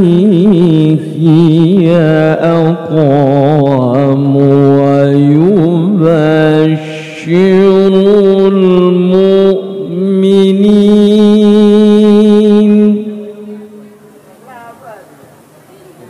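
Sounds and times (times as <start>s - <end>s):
man reciting melodically: 0.0s - 14.1s.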